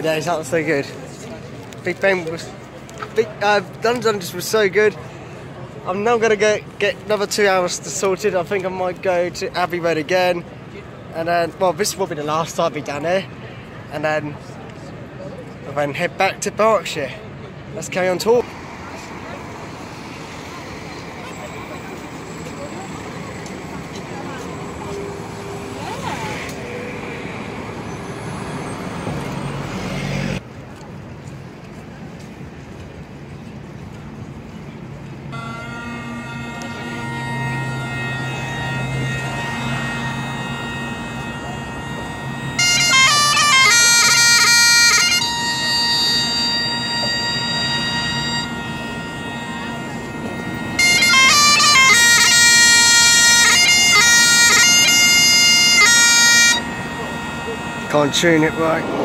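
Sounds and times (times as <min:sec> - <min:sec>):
road traffic: 0:00.0 - 0:59.0
bus passing: 0:16.8 - 0:59.0
bagpipe drones: 0:18.4 - 0:30.4, 0:35.3 - 0:59.0
bagpipe chanter melody: 0:35.3 - 0:59.0.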